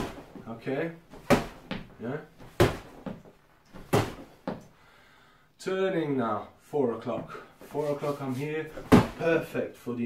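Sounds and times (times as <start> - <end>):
man speaking: 2.0 - 2.4, 5.6 - 10.0
sharp knocks: 3.8 - 4.6.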